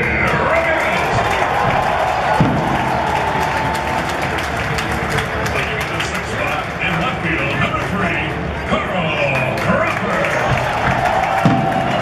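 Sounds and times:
crowd applauding: 0:00.0 - 0:12.0.

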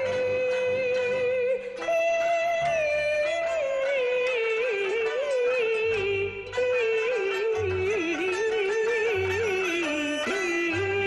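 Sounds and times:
instrumental accompaniment: 0:00.0 - 0:11.0.

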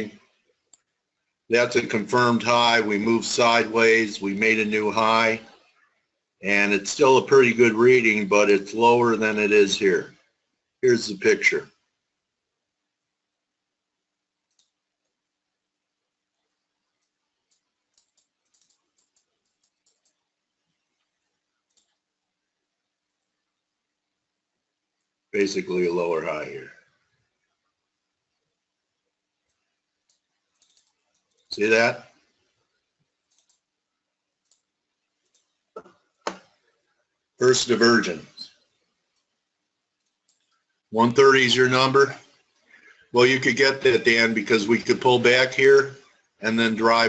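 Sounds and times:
faint computer mouse click: 0:14.5 - 0:14.8, 0:17.0 - 0:20.2, 0:21.7 - 0:22.0, 0:29.5 - 0:31.5, 0:33.3 - 0:33.6.

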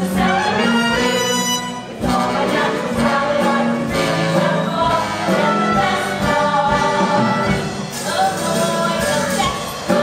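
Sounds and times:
ensemble of voices singing: 0:00.0 - 0:10.0
instrumental accompaniment: 0:00.0 - 0:10.0.

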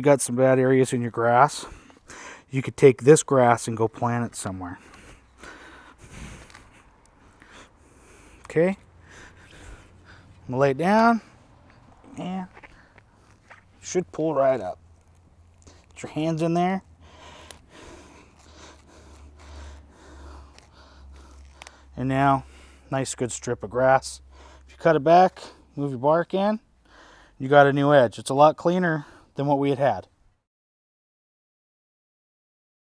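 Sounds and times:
grass rustling: 0:04.0 - 0:22.8
grass roots tearing: 0:11.7 - 0:22.3
lawn edger scraping soil: 0:17.4 - 0:22.1.

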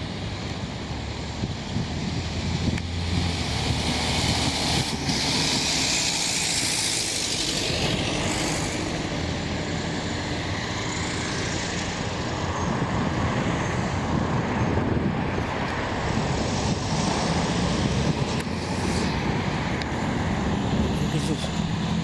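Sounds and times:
steady road noise: 0:00.0 - 0:22.0
passing vehicle tyre hiss: 0:01.7 - 0:14.2, 0:15.6 - 0:21.6.

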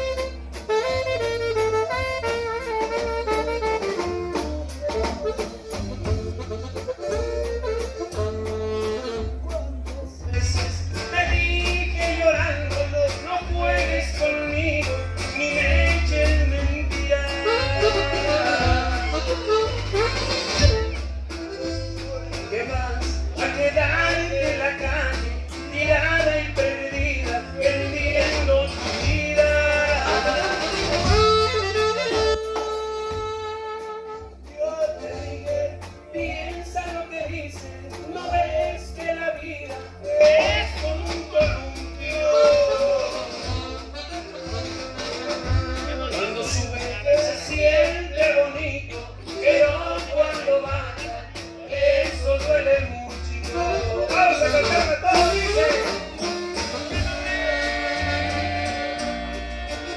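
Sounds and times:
live band playing: 0:00.0 - 0:59.9
two men singing duet: 0:09.8 - 0:19.8, 0:21.9 - 0:32.0, 0:34.4 - 0:44.3, 0:45.6 - 0:59.9.

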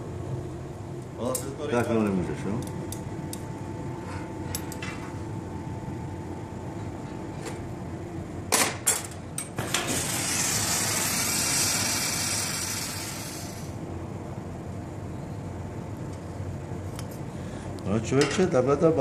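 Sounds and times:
rushing hiss: 0:09.9 - 0:13.8.

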